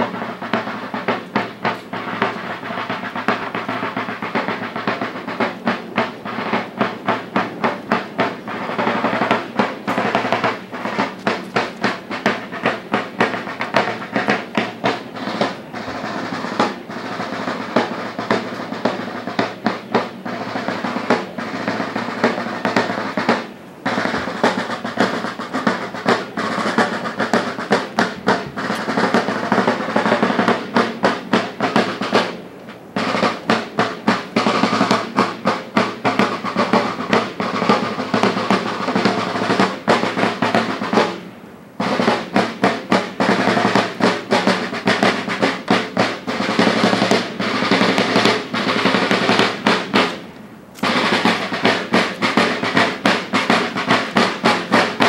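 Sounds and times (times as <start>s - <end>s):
snare drums playing fast rhythm: 0.0s - 55.0s.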